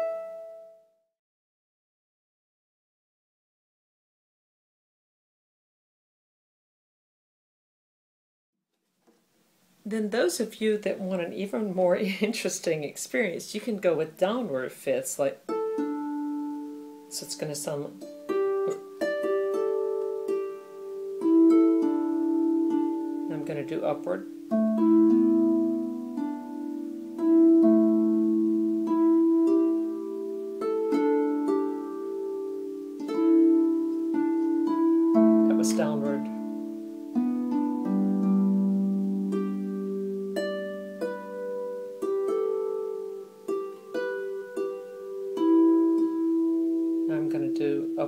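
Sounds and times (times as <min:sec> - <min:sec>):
harp plucked slowly: 0:00.0 - 0:00.9, 0:15.5 - 0:48.0.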